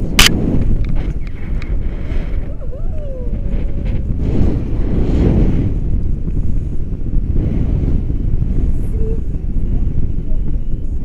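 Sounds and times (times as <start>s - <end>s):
wind rushing over microphone: 0.0s - 11.0s.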